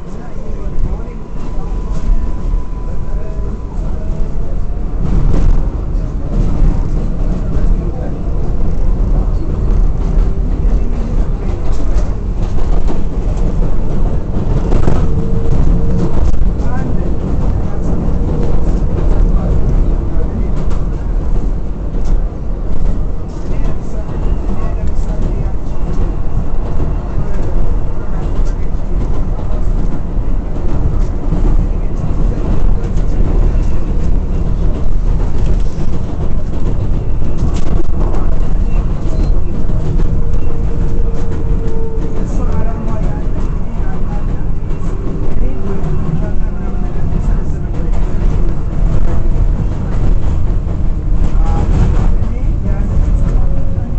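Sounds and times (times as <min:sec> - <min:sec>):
subway car wheels rumbling: 0:00.0 - 0:53.9.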